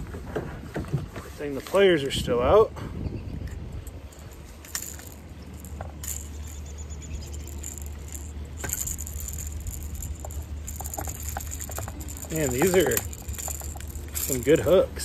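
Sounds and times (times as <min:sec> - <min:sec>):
metal pliers clicking on hooks: 0:03.9 - 0:06.6, 0:07.3 - 0:14.8.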